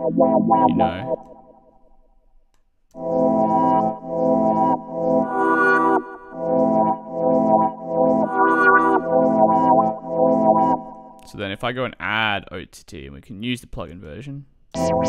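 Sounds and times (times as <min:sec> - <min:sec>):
synth arpeggio: 0:00.0 - 0:01.8, 0:03.0 - 0:11.2, 0:14.8 - 0:15.0.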